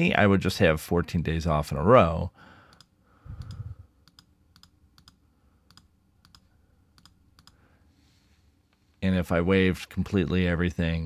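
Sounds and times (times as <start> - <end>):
computer mouse clicks: 2.7 - 7.6.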